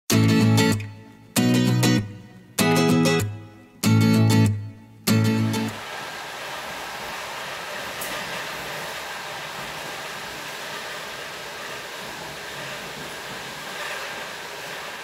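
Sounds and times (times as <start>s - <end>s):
train wheels rumbling on track: 5.8s - 15.0s.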